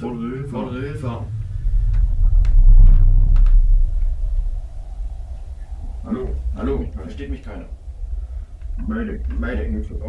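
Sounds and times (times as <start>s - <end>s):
deep low rumble: 0.0s - 10.0s.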